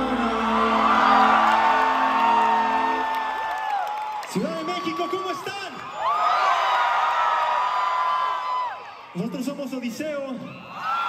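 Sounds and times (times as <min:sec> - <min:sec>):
concert crowd cheering: 0:00.0 - 0:11.0.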